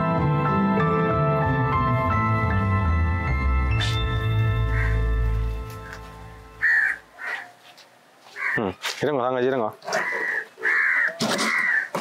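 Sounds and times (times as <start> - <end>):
background music: 0.0 - 7.2
crow cawing: 4.6 - 6.0, 6.6 - 7.6, 8.2 - 8.9, 9.8 - 12.0.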